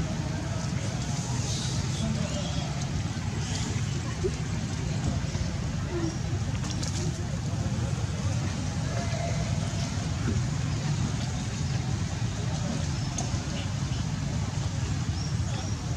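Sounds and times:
low outdoor rumble: 0.0 - 15.9.

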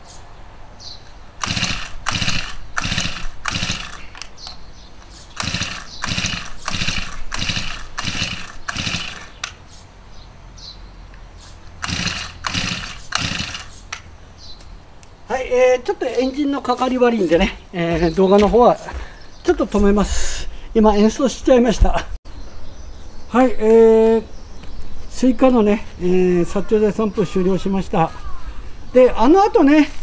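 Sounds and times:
recoil starter cranking engine: 1.4 - 4.2, 5.3 - 9.5, 11.8 - 13.8.

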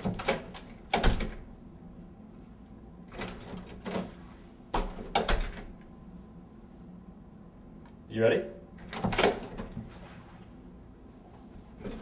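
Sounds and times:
door banging: 0.0 - 1.5.

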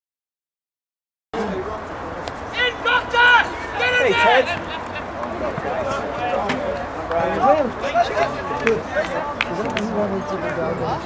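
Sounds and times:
open-air background noise: 1.4 - 11.0
people shouting high-pitched calls: 2.5 - 5.2.

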